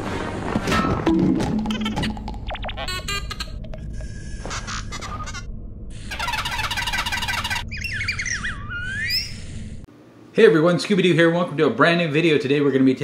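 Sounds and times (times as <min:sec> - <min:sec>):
steady low hum: 0:02.0 - 0:10.6
electronic robot chirps and beeps: 0:06.0 - 0:09.4.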